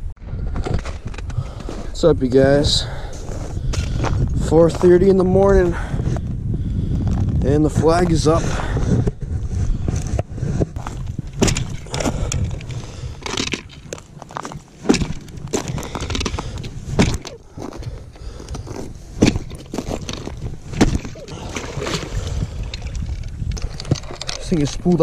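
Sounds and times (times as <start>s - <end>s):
ice cracking thuds: 9.9s - 25.0s
boot kicking through ice: 13.3s - 22.1s.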